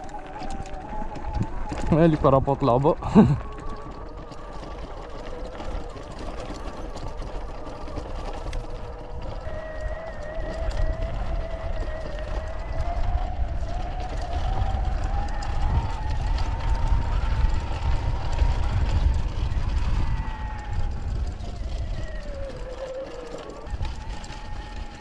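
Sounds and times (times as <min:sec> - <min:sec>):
electric motor whine: 0:00.0 - 0:25.0
tyre and wind rumble: 0:00.0 - 0:25.0.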